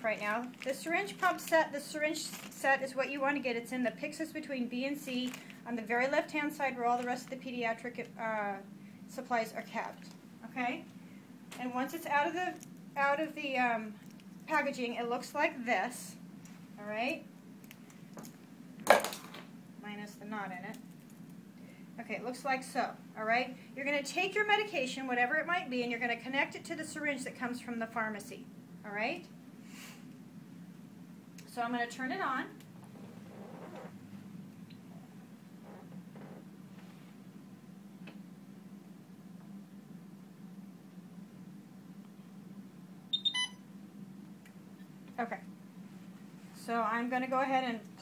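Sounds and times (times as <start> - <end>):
low steady hum: 0.0 - 48.0
infusion pump beeping: 43.1 - 43.6.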